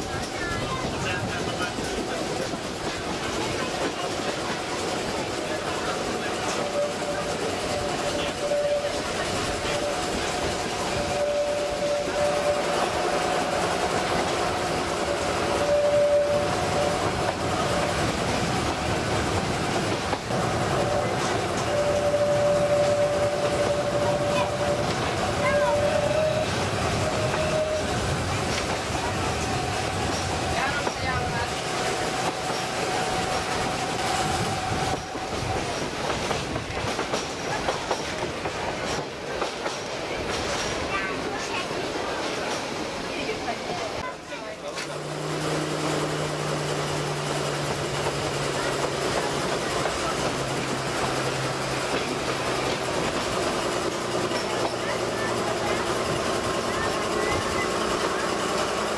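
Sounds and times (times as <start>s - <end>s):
train wheels clattering on rails: 0.0s - 58.9s
high wheel squeal: 14.9s - 18.0s, 20.7s - 31.4s.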